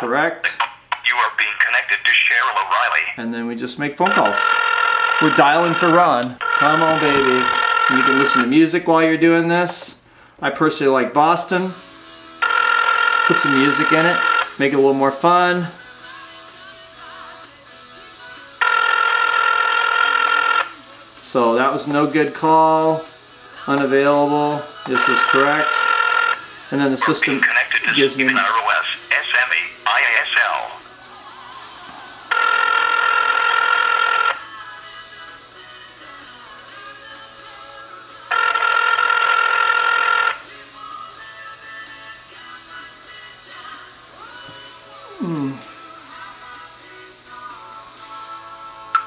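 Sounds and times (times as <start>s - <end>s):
telephone ringback tone: 4.1s - 8.6s, 12.4s - 14.7s, 18.6s - 20.8s, 24.9s - 29.6s, 32.3s - 34.4s, 38.3s - 40.5s.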